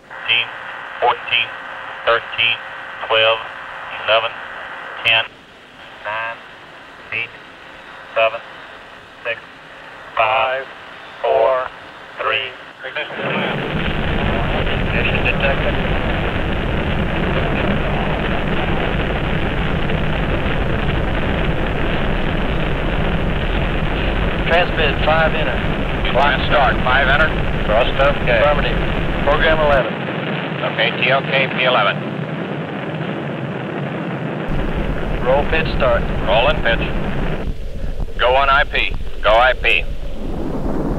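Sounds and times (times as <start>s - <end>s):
rocket engines rumbling: 0.0s - 40.9s.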